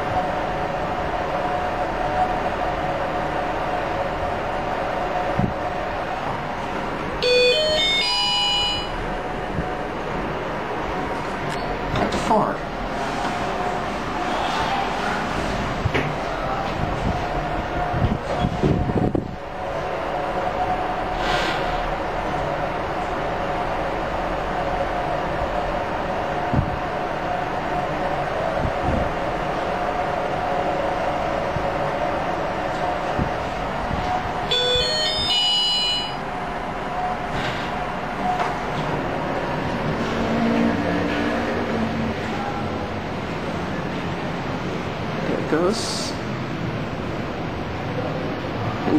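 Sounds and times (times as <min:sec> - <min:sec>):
elevator hum: 0:00.0 - 0:48.9
short electronic chime: 0:07.2 - 0:09.0, 0:34.5 - 0:36.2.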